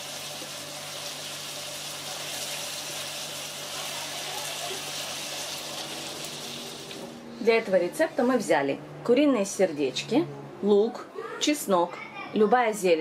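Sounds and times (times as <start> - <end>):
food sizzling in a frying pan: 0.0 - 7.2.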